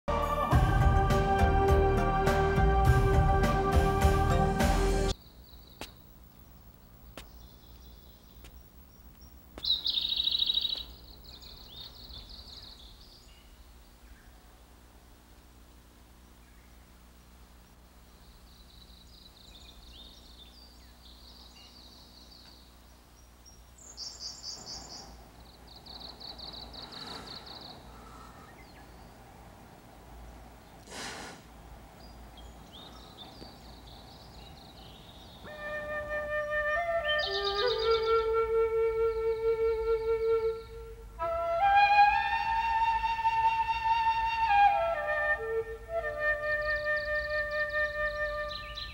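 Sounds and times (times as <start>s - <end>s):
songbird trilling and chirping: 5.2s - 14.5s, 17.6s - 29.4s, 31.9s - 35.5s, 37.2s - 38.2s, 46.7s - 48.9s
bamboo flute melody: 35.4s - 48.9s.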